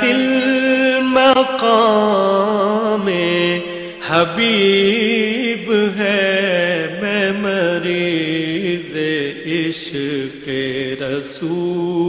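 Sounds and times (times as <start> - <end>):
person singing a devotional chant: 0.0 - 12.0.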